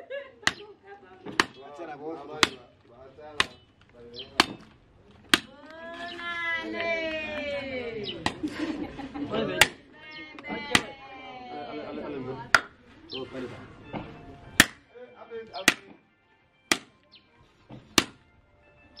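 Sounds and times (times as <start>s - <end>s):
machete chopping meat and bone: 0.4s - 1.6s, 2.3s - 2.7s, 3.3s - 3.6s, 4.2s - 5.6s, 8.2s - 8.6s, 9.5s - 9.9s, 10.6s - 10.9s, 14.5s - 14.8s, 15.6s - 16.0s, 16.7s - 17.0s, 17.8s - 18.2s.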